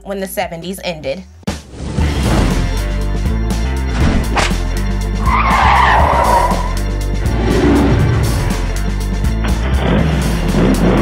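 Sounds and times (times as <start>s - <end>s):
theme music with bass beat: 1.4s - 11.0s
tyre screech: 5.2s - 6.9s.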